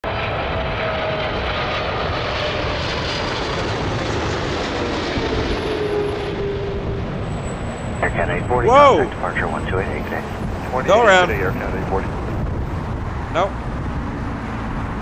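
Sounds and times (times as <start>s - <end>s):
jet engine roar: 0.0s - 15.0s.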